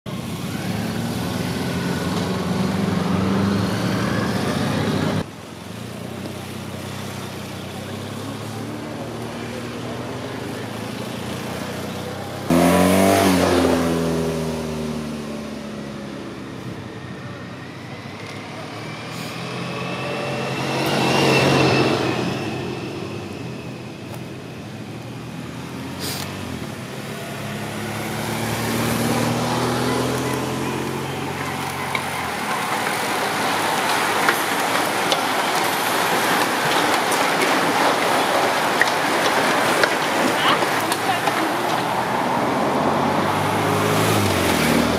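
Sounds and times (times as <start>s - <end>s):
motorcycles and vehicles passing: 0.1s - 44.9s.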